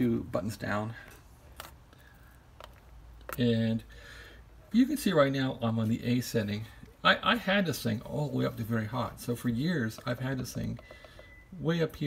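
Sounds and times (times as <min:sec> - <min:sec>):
quiet hum: 0:00.0 - 0:12.0.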